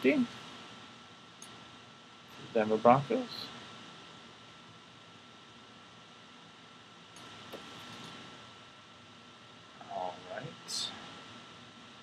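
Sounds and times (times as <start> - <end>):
low hiss: 0.0 - 12.0.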